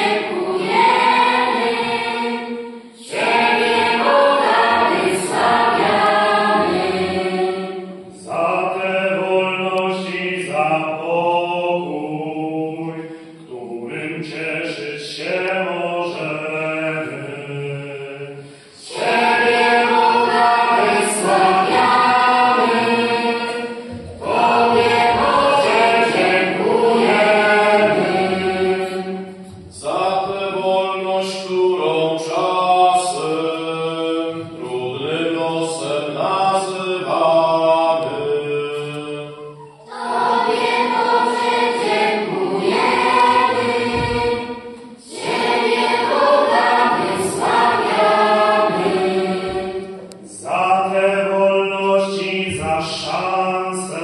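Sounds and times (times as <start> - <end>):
children's choir singing: 0.0 - 54.0.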